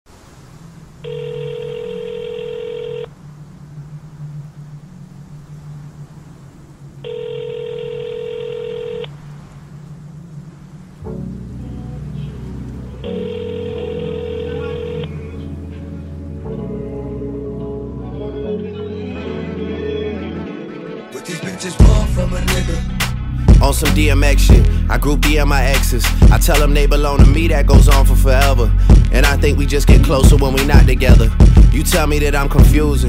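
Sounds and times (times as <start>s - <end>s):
low music bed: 0.4s - 33.0s
telephone ringback tone: 1.0s - 3.1s, 7.0s - 9.1s, 13.0s - 15.4s
heavy bass beat: 21.8s - 33.0s.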